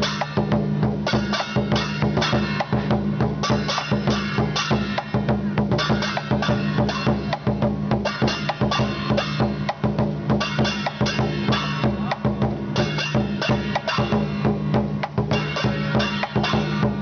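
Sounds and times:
clashing cymbals: 0.0 - 17.0
large drum beating fast: 0.0 - 17.0.

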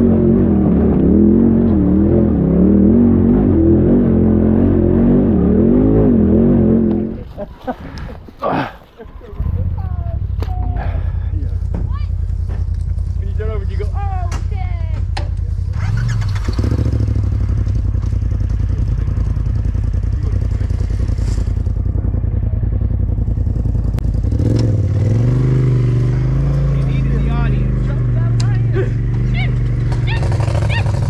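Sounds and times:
buggy engine revving: 0.0 - 7.4, 9.4 - 31.0.

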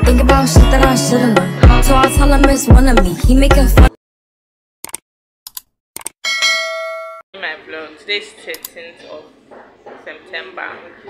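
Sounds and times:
bright bell-like ding: 6.2 - 7.2.

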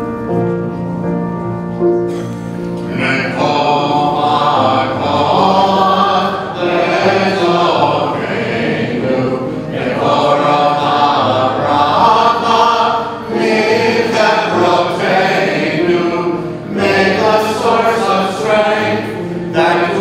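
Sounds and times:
congregation singing: 2.1 - 20.0.

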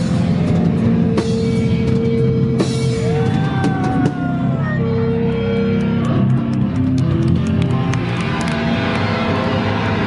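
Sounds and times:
distorted electric guitar and bass: 0.0 - 10.0.

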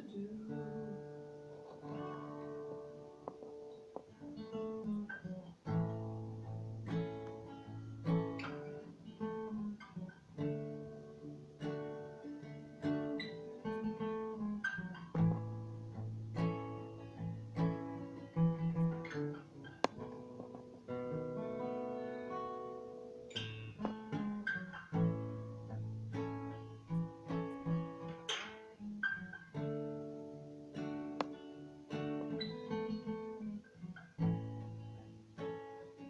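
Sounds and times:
fingerstyle acoustic guitar: 0.0 - 36.0.

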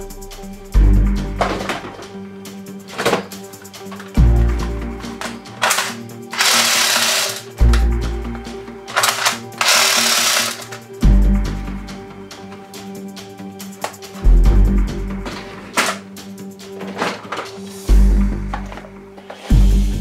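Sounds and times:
background music: 0.0 - 20.0
harsh noise bursts: 5.6 - 7.5, 9.0 - 10.7.

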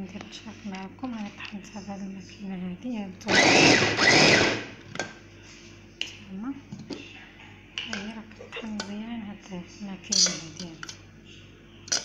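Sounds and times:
food chopper blade whirring: 3.3 - 4.8.

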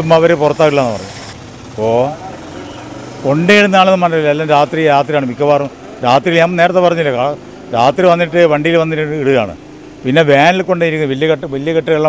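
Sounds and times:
man talking: 0.0 - 1.1, 1.8 - 2.4, 3.2 - 12.0
street traffic noise: 0.0 - 12.0.

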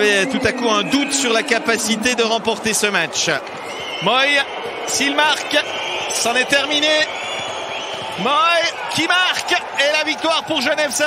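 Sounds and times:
man commentating: 0.0 - 3.4
arena crowd din: 0.0 - 11.0.

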